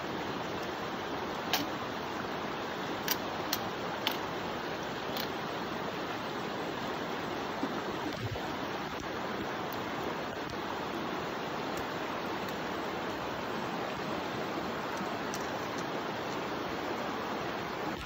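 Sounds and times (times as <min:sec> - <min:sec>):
creek running over rocks: 0:00.0 - 0:18.0
sharp clicks: 0:01.5 - 0:01.8, 0:03.0 - 0:04.3.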